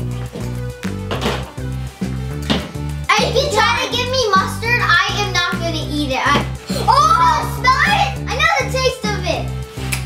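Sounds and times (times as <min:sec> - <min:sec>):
background music with steady beat: 0:00.0 - 0:10.0.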